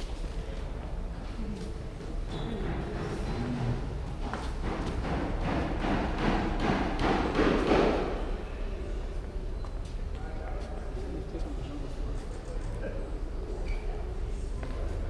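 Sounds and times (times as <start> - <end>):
background murmur: 0.0 - 15.0.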